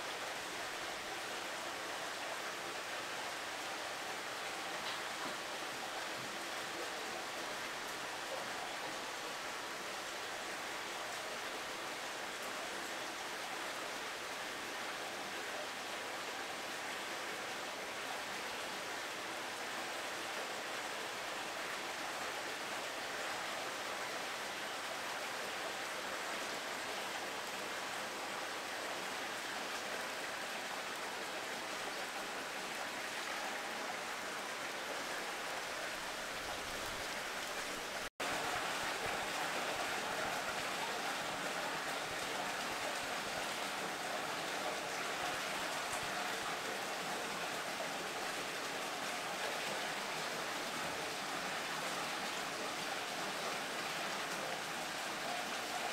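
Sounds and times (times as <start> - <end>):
running water rushing: 0.0 - 55.9.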